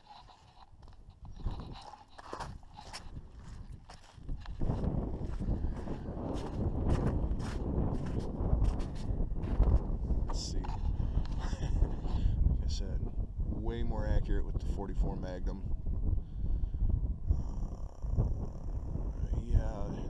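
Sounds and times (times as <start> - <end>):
scrapes: 0.0 - 4.2
footsteps on snow and gravel: 0.0 - 11.5
wind buffeting microphone: 0.0 - 20.0.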